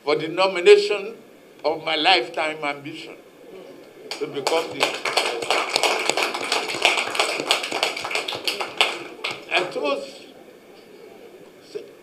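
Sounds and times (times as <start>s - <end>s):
people applauding: 4.1s - 9.8s.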